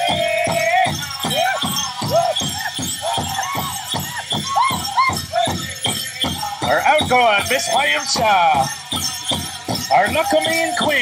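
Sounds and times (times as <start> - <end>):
high group singing: 0.0 - 3.9
leg bells jingling: 0.0 - 11.0
steady drumbeat: 0.0 - 11.0.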